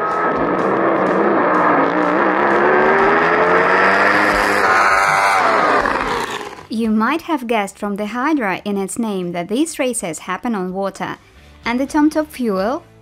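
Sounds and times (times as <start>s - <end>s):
boat engine at full throttle: 0.0s - 6.7s
music: 0.0s - 13.0s.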